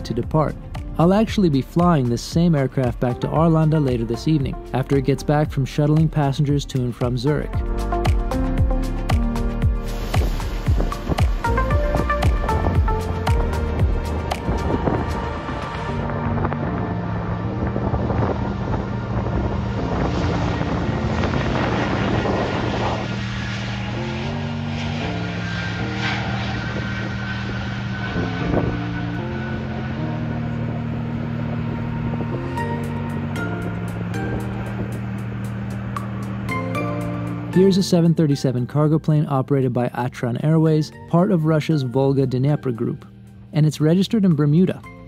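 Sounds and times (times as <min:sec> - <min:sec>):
background music with low chords: 0:00.0 - 0:45.0
jet engines roaring at takeoff: 0:08.3 - 0:38.4.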